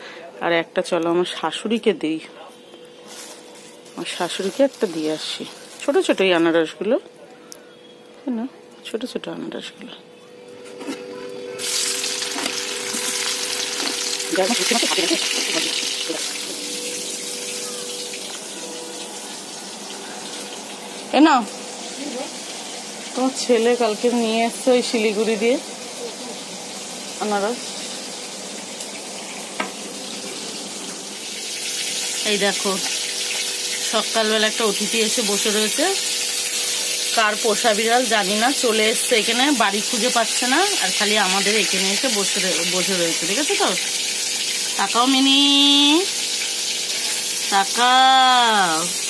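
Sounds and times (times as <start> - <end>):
woman talking: 0.4 - 2.4, 4.0 - 7.1, 8.2 - 10.1, 14.3 - 16.3, 21.1 - 22.4, 23.1 - 26.4, 27.2 - 27.7, 32.2 - 32.9, 33.9 - 36.0, 37.1 - 43.8, 44.8 - 46.1, 47.5 - 49.0
oil sizzling in a wok: 3.0 - 6.7, 11.4 - 49.0.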